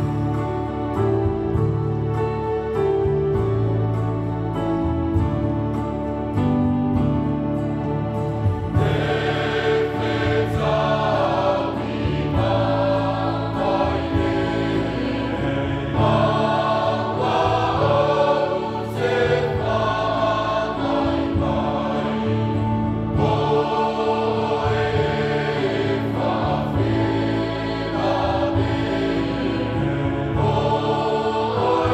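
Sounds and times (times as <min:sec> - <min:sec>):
electronic keyboard playing a hymn: 0:00.0 - 0:31.9.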